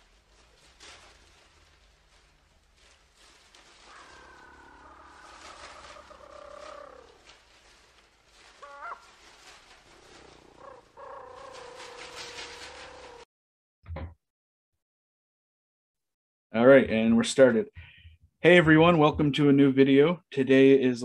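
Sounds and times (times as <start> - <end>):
long animal calls: 0.9 - 13.3.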